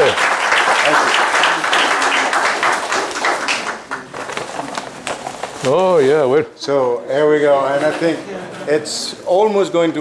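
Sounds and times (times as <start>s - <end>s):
audience applauding: 0.0s - 4.3s.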